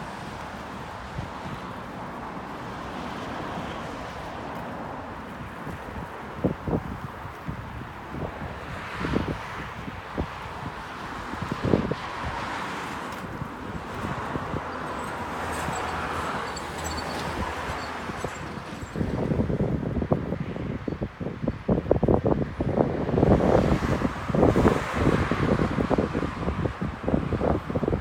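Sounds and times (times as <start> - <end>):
road traffic: 0.0 - 28.0
wind buffeting microphone: 0.1 - 16.3, 17.0 - 28.0.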